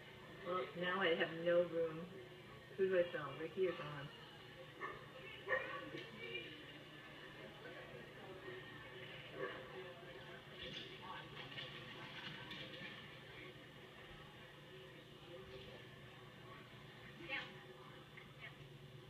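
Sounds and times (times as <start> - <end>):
indistinct voices from television: 0.0 - 19.0.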